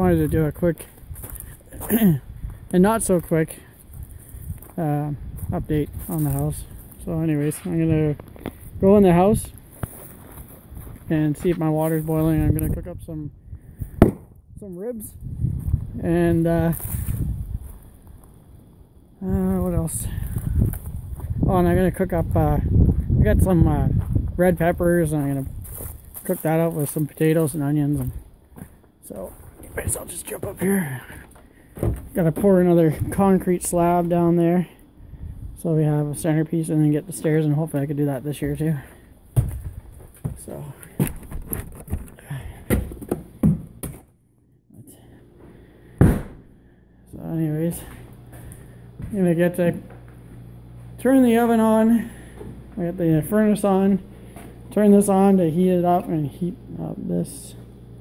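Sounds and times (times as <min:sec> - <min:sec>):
footsteps: 0:00.2 - 0:12.9, 0:15.4 - 0:18.4, 0:19.9 - 0:34.2, 0:37.1 - 0:44.1, 0:47.1 - 0:55.3
loud thump: 0:14.0 - 0:14.4, 0:46.0 - 0:46.5
low thuds: 0:39.3 - 0:44.0, 0:45.9 - 0:46.5.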